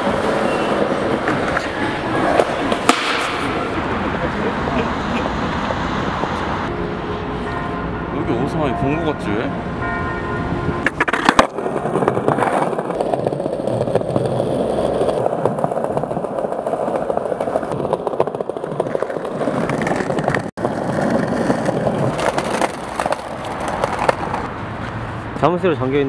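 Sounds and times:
skateboard clacks: 0.0 - 3.8, 10.8 - 24.5
skateboard wheels rolling on paving: 0.0 - 6.7, 10.7 - 26.0.

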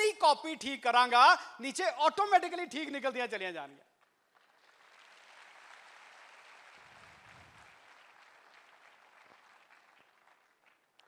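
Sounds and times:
faint audience applause: 4.0 - 11.0.

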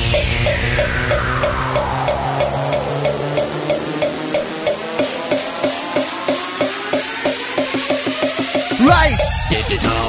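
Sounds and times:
fast hardcore dance track: 6.3 - 9.4.

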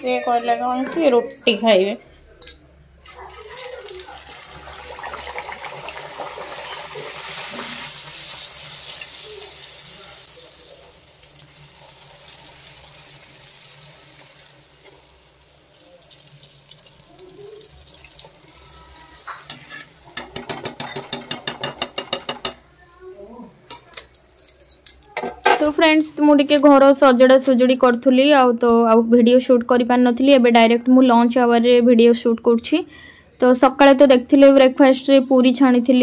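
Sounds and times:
frying in hot oil sizzling: 3.0 - 22.7.

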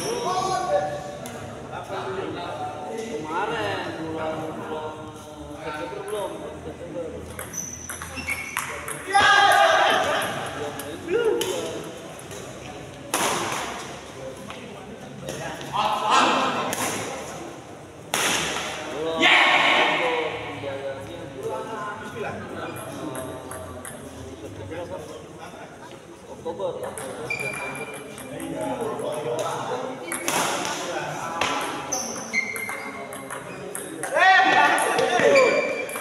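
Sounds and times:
players shouting: 9.0 - 10.4
rackets striking shuttlecock: 12.3 - 14.0, 18.1 - 18.9, 30.1 - 36.0.

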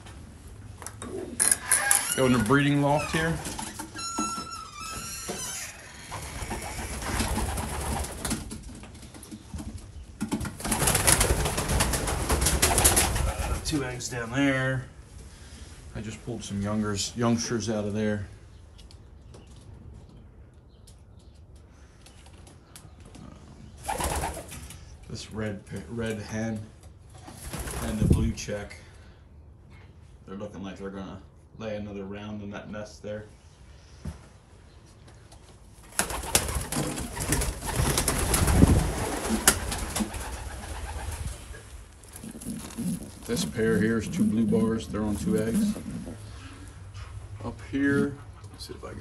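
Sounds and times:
pigeons clattering and rustling: 1.0 - 13.8, 21.2 - 24.8, 35.8 - 48.8
pigeons cooing: 36.0 - 47.3.

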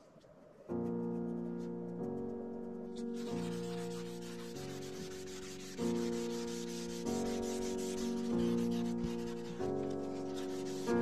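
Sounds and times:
tissue rubbing on paper: 0.9 - 11.0.

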